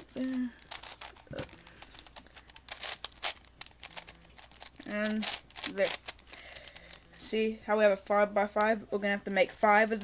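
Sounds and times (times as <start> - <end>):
plastic puzzle cube clicking: 0.6 - 7.0.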